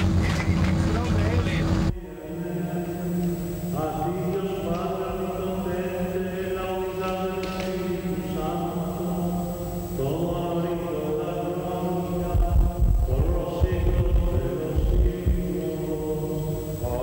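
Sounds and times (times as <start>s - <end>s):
steady low hum: 0.0s - 17.0s
man chanting: 0.8s - 17.0s.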